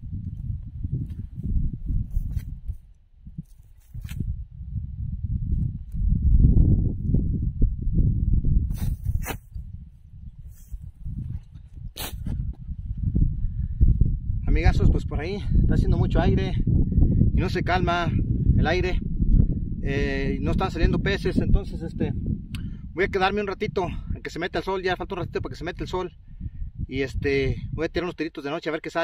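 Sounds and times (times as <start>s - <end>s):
wind buffeting microphone: 0.0s - 28.4s.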